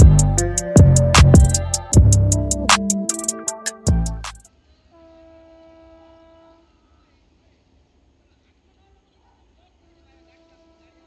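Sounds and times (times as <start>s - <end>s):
distant train horn: 4.9s - 6.8s.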